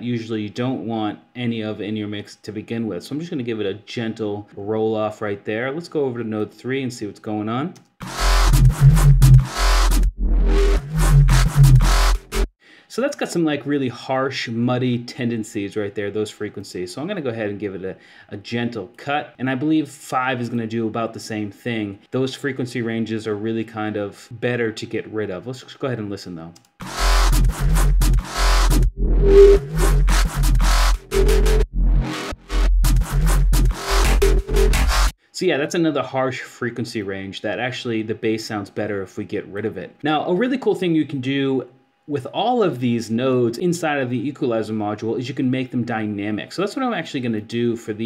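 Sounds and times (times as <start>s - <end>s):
muddy electronic bass line: 8.0s - 12.5s, 26.8s - 35.1s.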